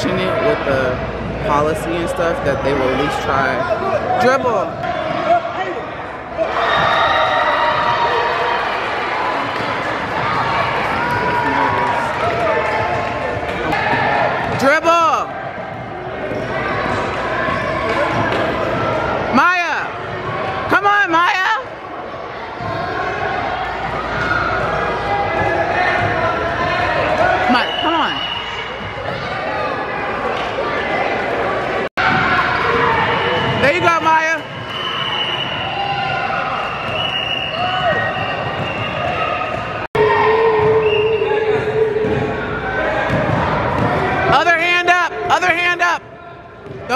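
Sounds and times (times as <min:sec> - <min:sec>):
spectators chattering: 0:00.0 - 0:46.9
sneakers squeaking: 0:22.5 - 0:44.4.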